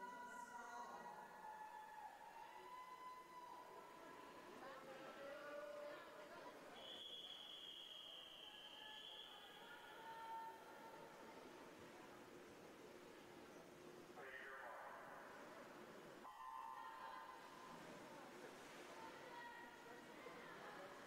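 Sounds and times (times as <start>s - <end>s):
long steady whistle: 0.1s - 4.3s, 6.8s - 10.8s, 16.2s - 17.7s.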